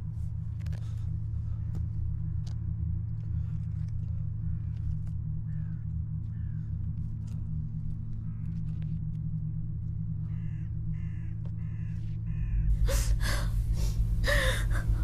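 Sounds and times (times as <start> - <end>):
low drone: 0.0 - 15.0
crow cawing: 5.5 - 6.7, 10.2 - 13.4
breathy bursts: 12.8 - 15.0.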